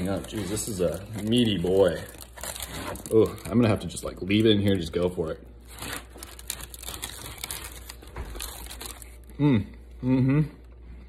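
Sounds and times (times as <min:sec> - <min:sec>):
crunchy chewing of fried sandwich: 0:05.6 - 0:09.3.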